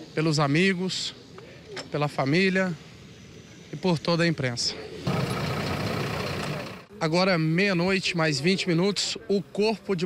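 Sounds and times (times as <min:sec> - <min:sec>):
faint crowd voices: 0:00.8 - 0:10.0
engine running: 0:05.0 - 0:06.9.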